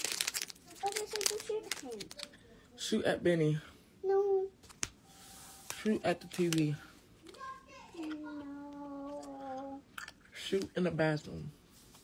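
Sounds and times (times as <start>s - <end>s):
packet crinkling and rustling: 0.0s - 2.4s, 5.6s - 8.4s
person speaking: 5.2s - 9.8s.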